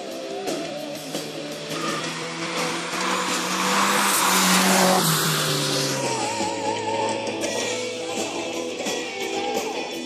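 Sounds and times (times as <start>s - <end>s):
tyres skidding on wet asphalt: 0.6s - 7.5s
race car engine revving: 0.9s - 7.7s.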